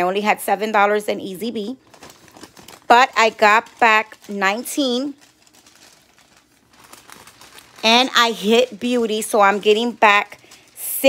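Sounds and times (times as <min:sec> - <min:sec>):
paper receipt rustling: 0:01.4 - 0:11.0.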